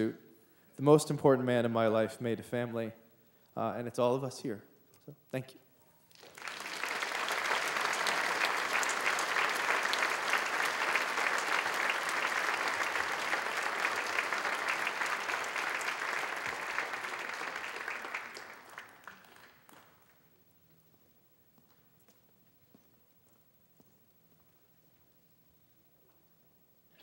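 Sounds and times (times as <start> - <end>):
audience applauding: 6.1 - 20.2.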